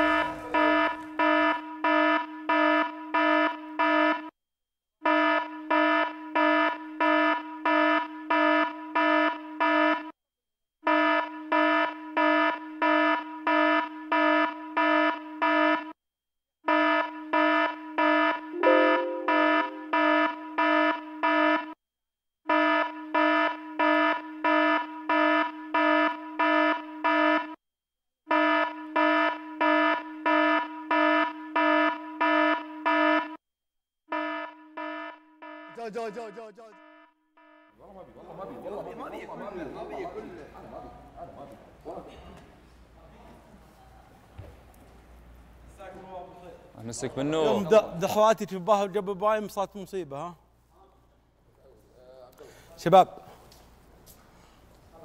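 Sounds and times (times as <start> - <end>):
buzzing alarm beeping: 0.0 - 4.3, 5.1 - 10.1, 10.9 - 15.9, 16.7 - 21.8, 22.5 - 27.6, 28.3 - 33.4, 34.1 - 37.8.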